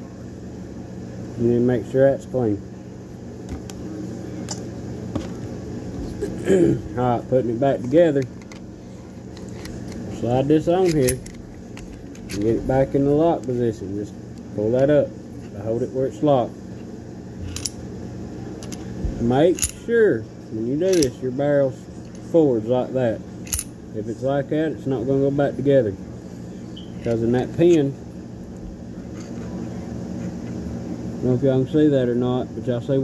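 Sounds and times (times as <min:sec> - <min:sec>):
steady low hum: 0:00.0 - 0:33.0
man clearing his throat: 0:06.2 - 0:07.0
pistol parts clicking: 0:10.8 - 0:12.6, 0:17.4 - 0:17.8, 0:18.6 - 0:18.8, 0:19.5 - 0:19.8, 0:20.9 - 0:21.2, 0:23.4 - 0:23.7.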